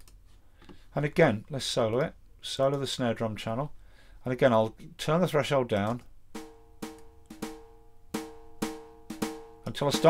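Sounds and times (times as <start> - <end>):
snare drum strikes: 6.4 - 10.0.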